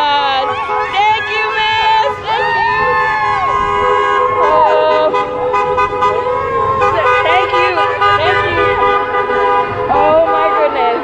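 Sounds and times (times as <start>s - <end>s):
car horns honking: 0.0s - 11.0s
people calling out and cheering: 0.0s - 11.0s.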